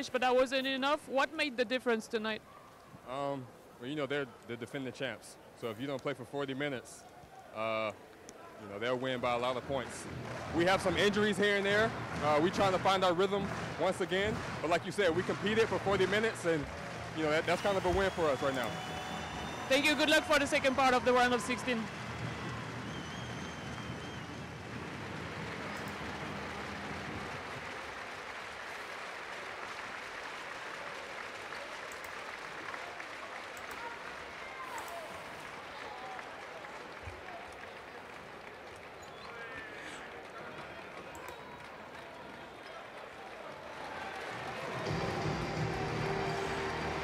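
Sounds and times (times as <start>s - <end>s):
crowd applauding: 8.8s - 47.0s.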